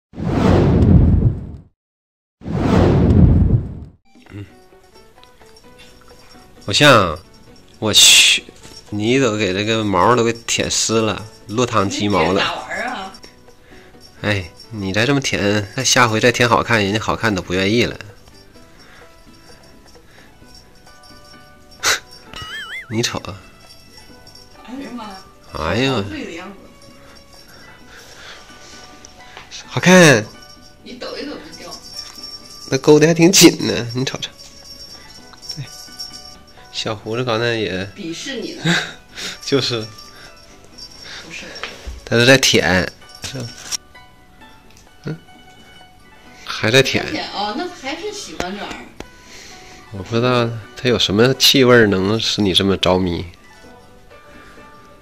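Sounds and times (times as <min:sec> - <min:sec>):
deep whoosh: 0:00.2 - 0:01.7, 0:02.4 - 0:04.0
quiet background music: 0:04.1 - 0:55.0.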